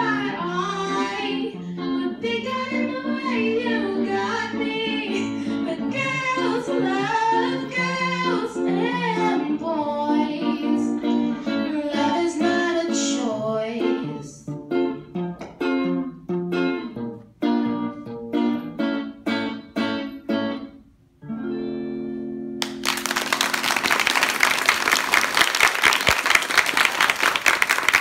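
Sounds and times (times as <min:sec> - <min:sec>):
woman singing: 0:00.0 - 0:14.6
electric guitar strumming chords: 0:00.0 - 0:23.2.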